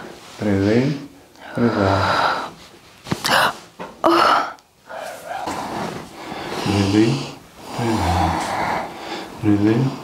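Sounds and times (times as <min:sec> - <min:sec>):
breathing in and out: 0:01.3 - 0:02.7, 0:03.3 - 0:10.0
man speaking: 0:06.6 - 0:08.3, 0:09.4 - 0:10.0.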